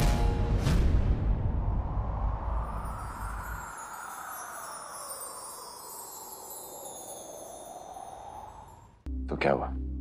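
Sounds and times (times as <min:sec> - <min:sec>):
shimmering wind-chime wash: 0:02.4 - 0:09.0.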